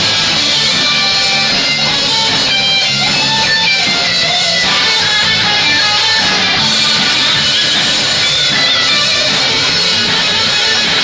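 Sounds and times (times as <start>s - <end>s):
live band with electric guitars: 0.0s - 11.0s.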